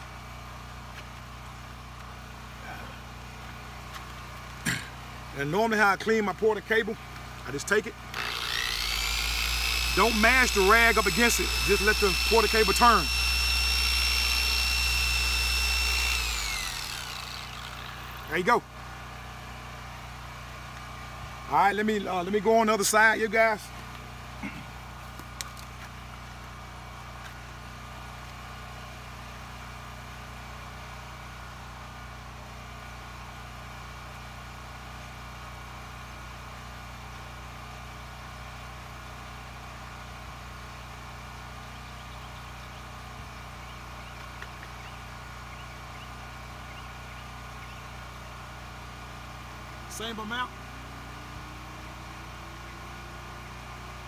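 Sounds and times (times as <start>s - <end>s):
machine hum: 8.1s - 19.0s.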